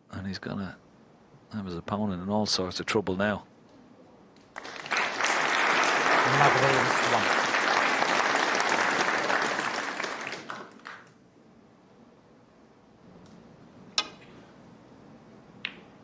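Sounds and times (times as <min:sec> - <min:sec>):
audience applauding: 0:04.5 - 0:11.2.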